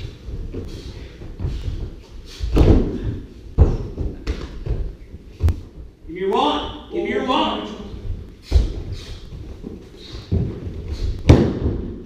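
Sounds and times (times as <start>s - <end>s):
body thudding on foam mats: 0.0s - 6.0s, 8.0s - 12.0s.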